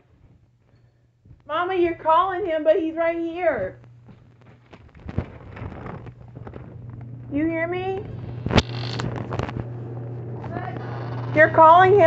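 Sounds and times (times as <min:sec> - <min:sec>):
steady low hum: 0:00.0 - 0:12.0
phone microphone handling noise: 0:03.8 - 0:11.8.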